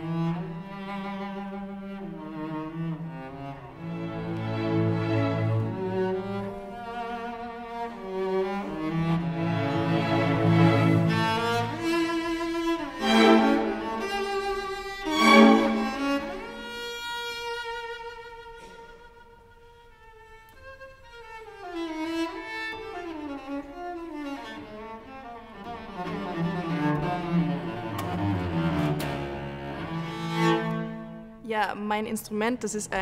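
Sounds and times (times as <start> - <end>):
cello bowed solo: 0.0 - 31.4
orchestra playing: 7.7 - 17.6.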